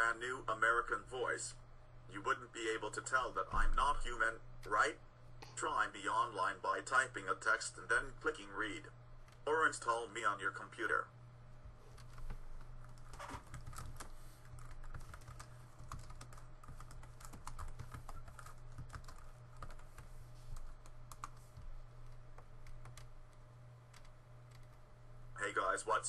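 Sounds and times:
steady low hum: 0:00.0 - 0:26.0
typing on computer keyboard: 0:12.0 - 0:21.4, 0:22.0 - 0:23.1, 0:23.9 - 0:24.7.

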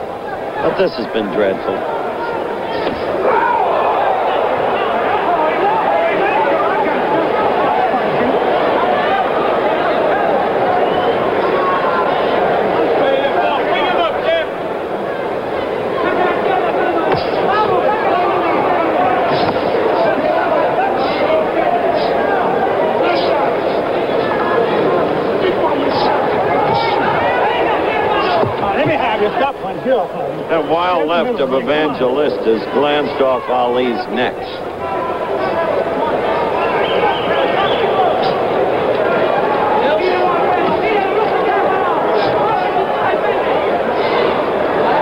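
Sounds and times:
crowd voices talking and calling: 0:00.0 - 0:45.0.

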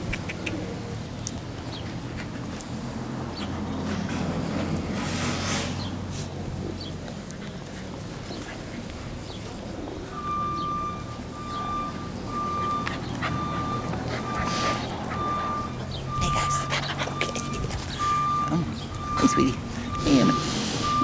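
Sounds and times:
low engine hum: 0:00.0 - 0:21.0
reversing alarm beeping: 0:09.7 - 0:21.0.

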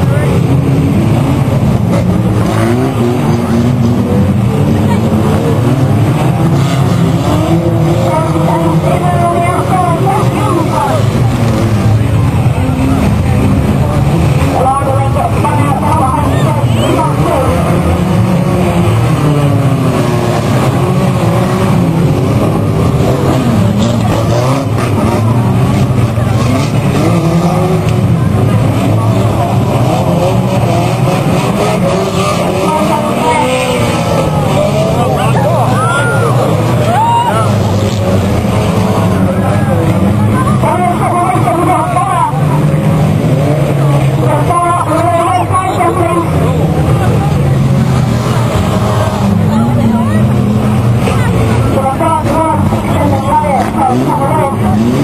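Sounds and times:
racing car engines revving: 0:00.0 - 0:55.0.

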